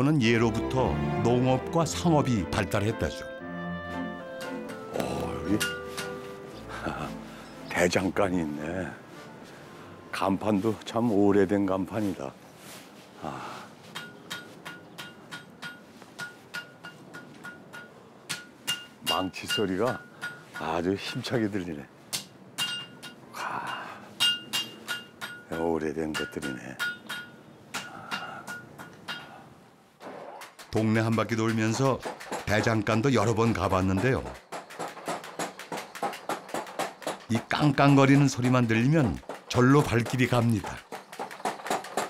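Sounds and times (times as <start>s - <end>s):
hammer clanging on anvil: 4.4s - 6.2s, 13.9s - 21.2s, 22.1s - 29.4s.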